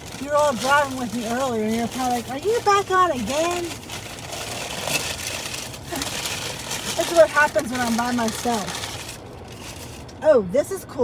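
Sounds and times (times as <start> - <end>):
paper wrapping rustling: 0.0 - 10.2
plastic bag crinkling: 0.0 - 10.2.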